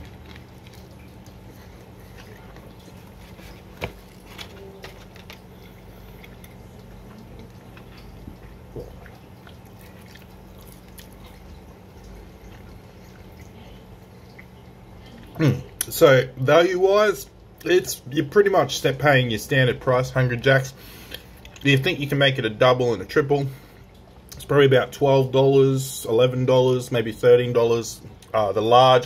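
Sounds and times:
man chewing food: 0:00.0 - 0:15.9, 0:20.8 - 0:21.7
low steady hum: 0:00.0 - 0:29.0
speech: 0:15.4 - 0:20.8, 0:21.6 - 0:23.6, 0:24.4 - 0:29.0.

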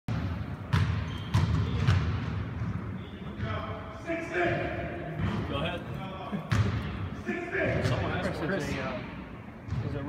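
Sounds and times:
basketball bouncing on hard court: 0:00.1 - 0:02.8, 0:06.5 - 0:06.9.

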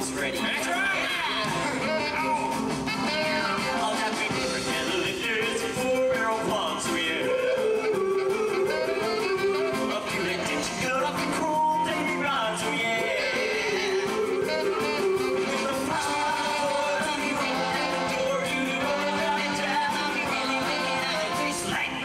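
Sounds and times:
band playing: 0:00.0 - 0:22.0
lead singer: 0:00.0 - 0:22.0.

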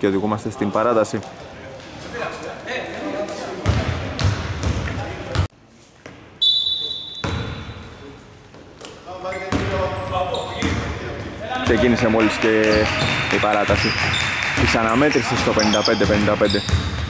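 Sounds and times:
voices in a hall: 0:00.0 - 0:16.7
basketball bouncing on hardwood: 0:15.4 - 0:17.0.

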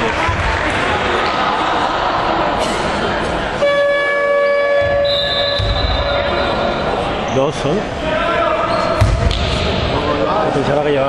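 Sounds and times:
hall noise: 0:00.0 - 0:10.6
scoreboard horn: 0:03.6 - 0:06.6.

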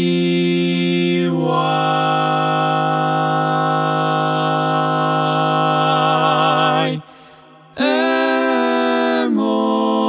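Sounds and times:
male voices singing a cappella: 0:00.0 - 0:07.1, 0:07.7 - 0:10.0.

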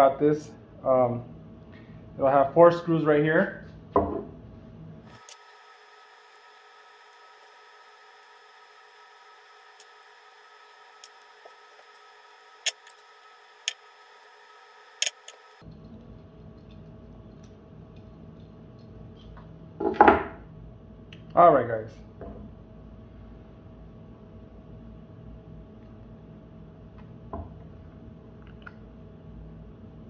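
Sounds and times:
faint steady hum: 0:00.0 - 0:30.0
screwdriver and screw clicks: 0:12.6 - 0:13.0, 0:15.0 - 0:15.6.

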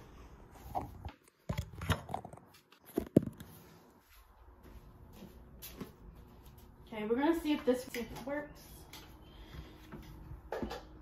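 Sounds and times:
objects knocking and clattering: 0:10.4 - 0:11.0.

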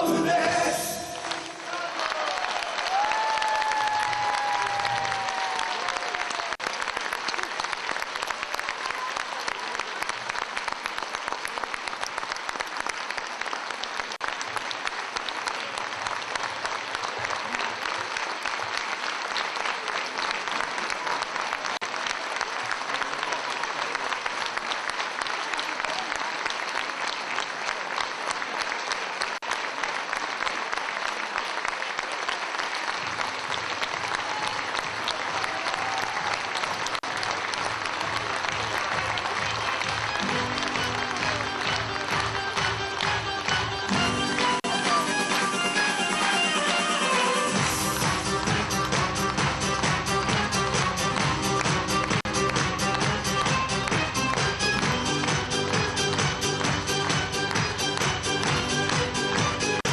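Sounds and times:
crowd applauding: 0:00.0 - 0:59.9.

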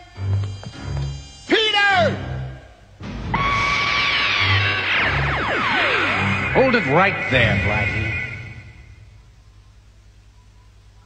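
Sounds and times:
dramatic background music: 0:02.3 - 0:09.2
held high tone: 0:06.6 - 0:09.2.

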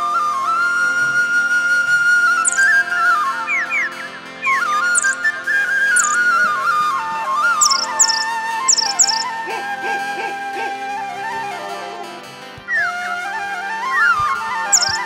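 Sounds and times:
slow flute melody: 0:00.0 - 0:15.0
short high chirping whistles: 0:02.4 - 0:03.0, 0:04.9 - 0:05.2, 0:06.0 - 0:06.5, 0:07.6 - 0:09.3, 0:14.7 - 0:15.0
held background tones: 0:06.0 - 0:06.3, 0:07.6 - 0:09.3.

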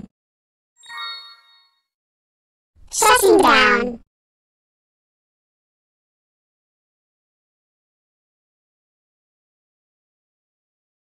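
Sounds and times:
electronic bell-like chime: 0:00.8 - 0:01.9.

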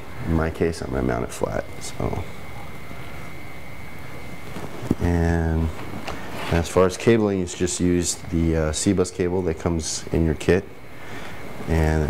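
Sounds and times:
background hiss: 0:00.0 - 0:12.0
faint high whine: 0:00.0 - 0:12.0.

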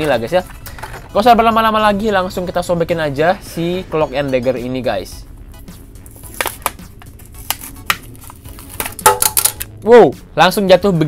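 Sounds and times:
plastic blister pack tearing: 0:06.2 - 0:09.7
sharp plastic crackles: 0:06.3 - 0:09.7.

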